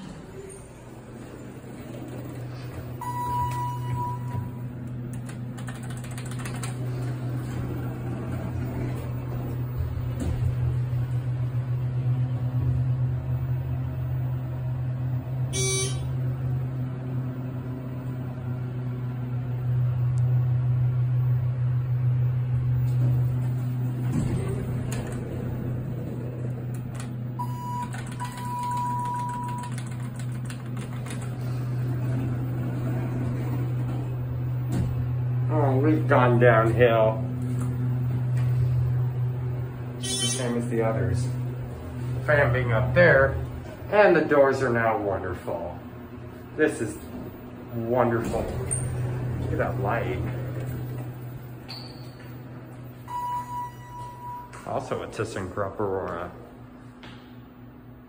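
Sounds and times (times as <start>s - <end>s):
elevator low hum: 0.0s - 58.0s
elevator signal chime: 3.0s - 4.7s, 15.5s - 16.2s, 27.4s - 30.1s, 53.0s - 54.8s
high electronic tone: 15.5s - 16.2s.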